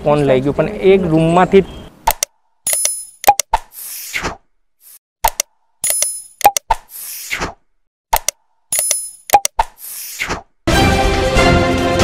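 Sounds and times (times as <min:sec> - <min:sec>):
pops and mouse clicks: 0:02.1 - 0:04.0, 0:05.2 - 0:10.5.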